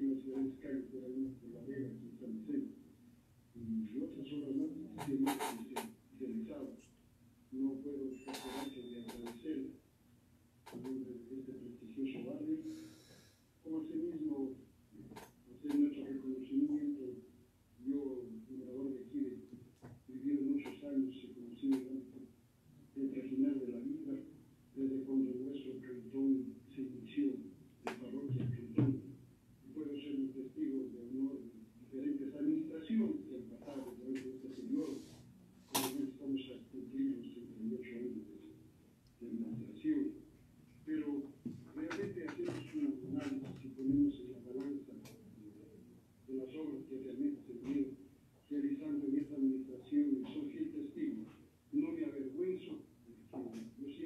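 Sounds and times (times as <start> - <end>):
person talking: 0.0 - 2.8, 3.6 - 6.9, 7.5 - 9.8, 10.7 - 13.0, 13.7 - 22.3, 23.0 - 54.0.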